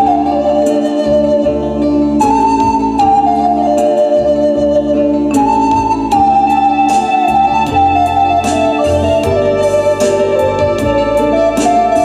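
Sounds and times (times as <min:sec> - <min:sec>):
bass line: 0:00.0 - 0:12.0
organ-like keyboard chords: 0:00.0 - 0:12.0
recorder melody: 0:00.0 - 0:12.0.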